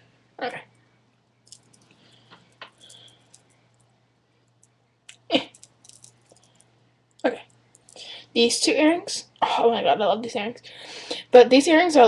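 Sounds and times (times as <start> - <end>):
earrings clicking and tapping: 1.5 - 3.9, 5.5 - 8.0.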